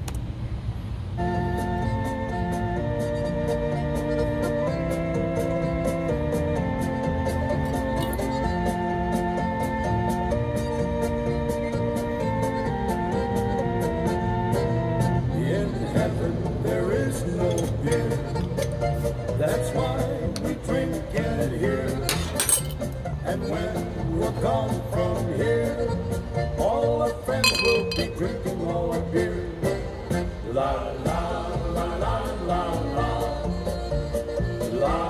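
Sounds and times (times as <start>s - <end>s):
polka music: 1.2s - 35.0s
glass clink: 8.0s - 8.3s, 22.1s - 22.9s, 27.4s - 28.2s
man singing: 15.2s - 22.4s, 23.2s - 35.0s.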